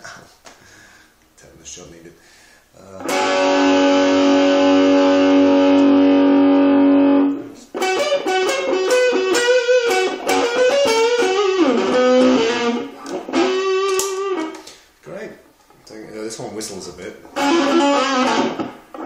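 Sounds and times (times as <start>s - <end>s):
electric guitar chord ringing: 3.0s - 14.6s, 17.3s - 19.0s
electric guitar single-note lines: 3.0s - 14.6s, 17.3s - 19.0s.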